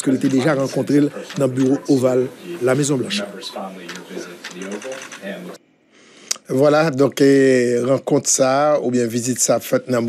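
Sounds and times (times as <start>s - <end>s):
news report speech: 0.0s - 5.6s
narration: 0.0s - 10.0s.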